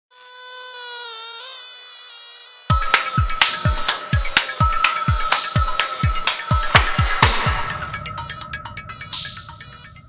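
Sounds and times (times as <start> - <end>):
mosquito wing whine: 0.1 - 10.0.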